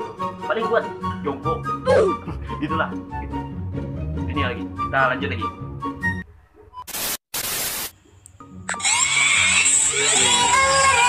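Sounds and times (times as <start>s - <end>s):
music: 0.0s - 6.3s, 8.4s - 11.0s
loud static hiss: 6.9s - 8.0s.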